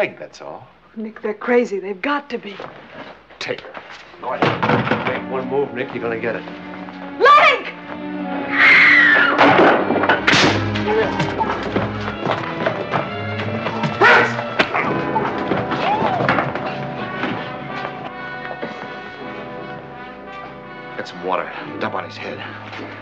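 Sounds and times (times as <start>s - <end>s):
film score music: 3.8s - 23.0s
heavy thuds of blows: 9.4s - 17.8s.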